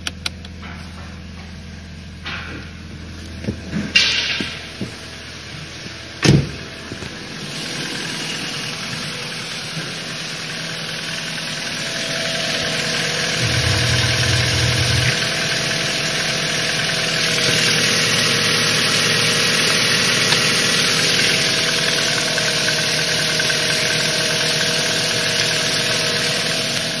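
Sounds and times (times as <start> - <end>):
car engine idling: 0.0 - 27.0.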